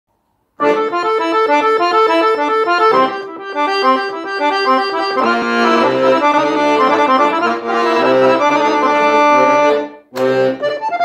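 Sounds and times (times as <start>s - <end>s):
accordion folk melody: 0.6s - 11.0s.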